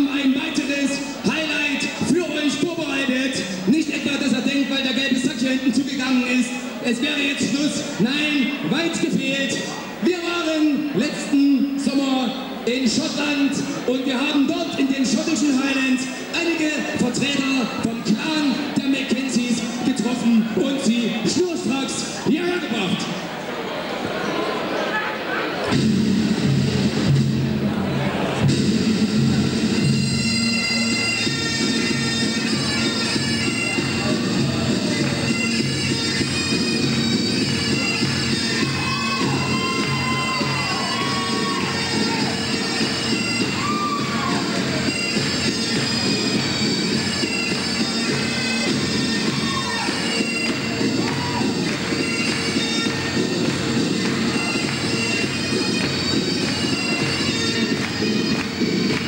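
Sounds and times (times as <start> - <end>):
bagpipe music: 28.7 - 59.0.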